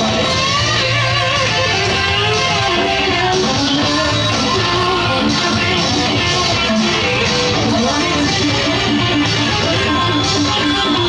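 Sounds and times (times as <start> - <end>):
electric guitar lead with vibrato: 0.0 - 11.0.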